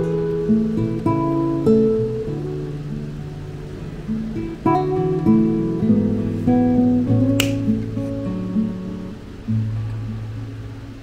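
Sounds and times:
acoustic guitar music: 0.0s - 11.0s
wire cutters snipping wire: 7.4s - 7.6s.

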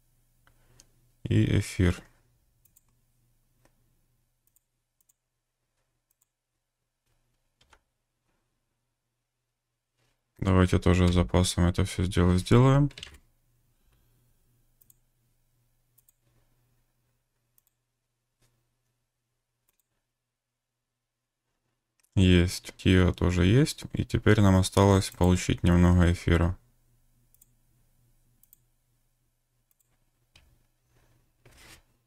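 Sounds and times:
faint steady hum: 0.0s - 21.4s, 22.0s - 32.0s
computer mouse clicks: 2.6s - 3.0s, 4.4s - 5.2s, 5.8s - 6.4s, 14.8s - 15.0s, 15.9s - 16.4s, 17.5s - 17.8s, 19.6s - 20.0s, 27.3s - 27.6s, 28.4s - 28.7s, 29.7s - 30.7s.

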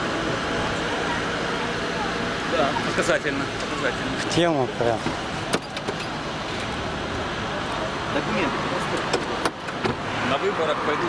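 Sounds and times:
road traffic noise: 0.0s - 11.0s.

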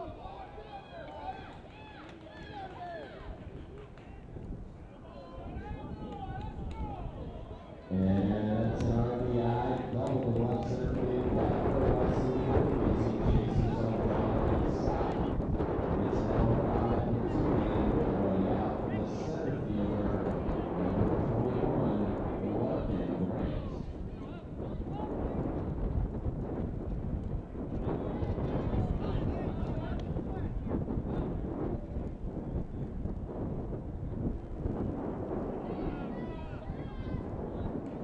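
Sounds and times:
people talking over one another: 0.0s - 33.0s, 33.6s - 38.0s
wind noise on microphone: 3.2s - 38.0s.

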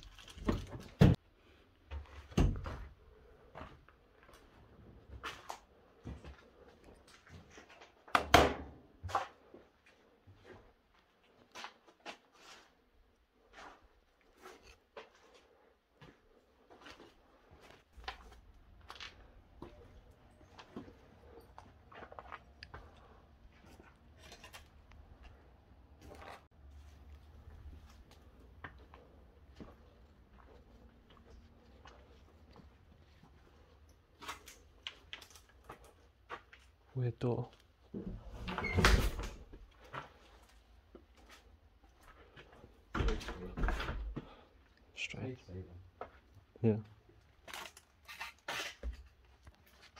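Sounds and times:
footsteps crunching on rubble: 13.4s - 36.9s.

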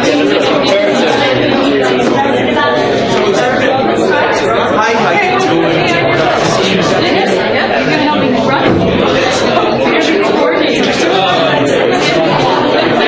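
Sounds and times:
hubbub of overlapping voices: 0.0s - 13.0s.

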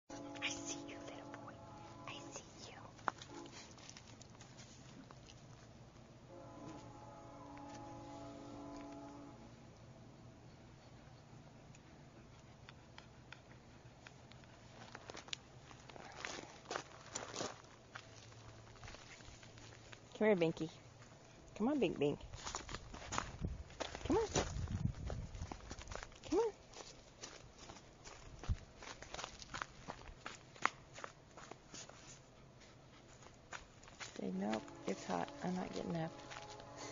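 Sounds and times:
steady low hum: 0.1s - 36.9s
puppy panting softly: 10.4s - 15.0s
footsteps on gravel: 14.9s - 20.0s, 22.4s - 31.7s, 33.2s - 36.9s.

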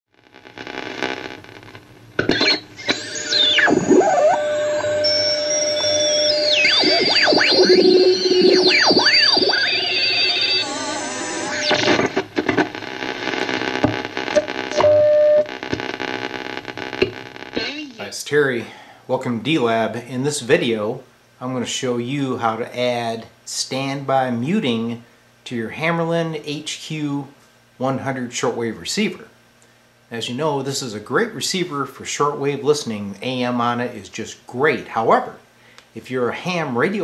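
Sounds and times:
snatches of station audio: 0.3s - 18.2s
radio hiss and static: 0.3s - 18.8s
sliding radio whistles: 2.2s - 12.3s.

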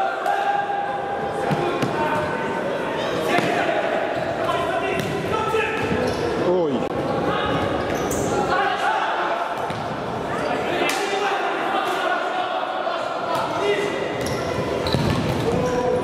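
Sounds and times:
players shouting in echoing hall: 0.0s - 16.0s.

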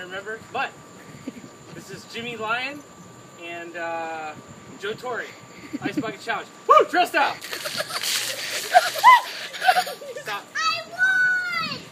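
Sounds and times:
water splashing from buckets: 7.4s - 9.5s
adults and children laughing: 7.4s - 10.5s.

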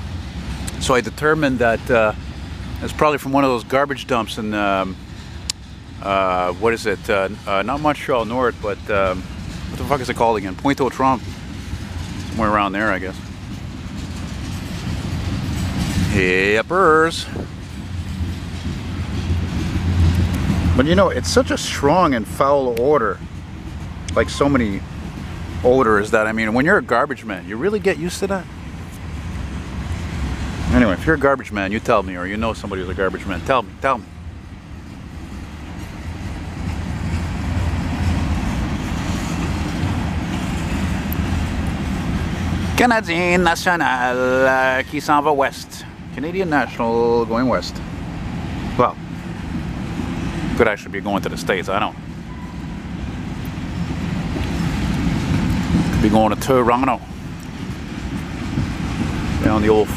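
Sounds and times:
freight train rolling on rails: 0.0s - 59.9s.

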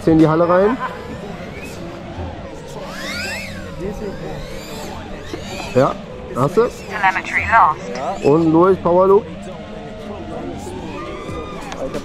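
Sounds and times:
quadcopter motors whining: 1.0s - 5.8s.

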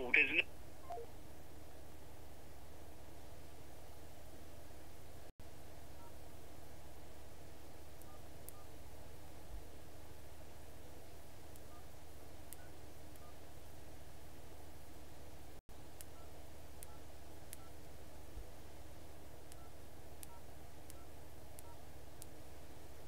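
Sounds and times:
touch-tone beeps: 0.8s - 1.1s.

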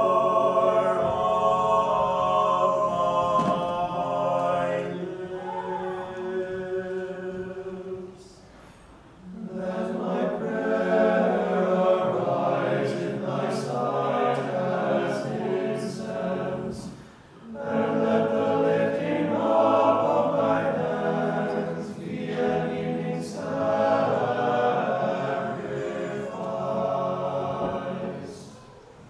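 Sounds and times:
group chanting a cappella: 0.0s - 29.0s.

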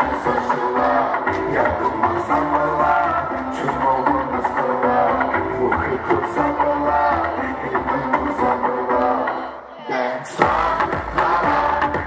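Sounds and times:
man rapping into a microphone: 0.0s - 9.2s
loud backing track: 0.0s - 12.0s.

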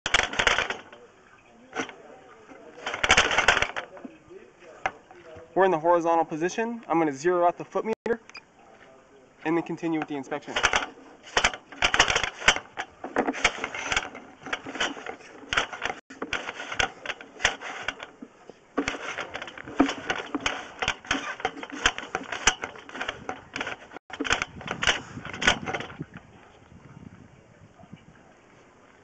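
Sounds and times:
inspection cable clattering in drain: 0.1s - 5.3s, 9.5s - 26.2s.

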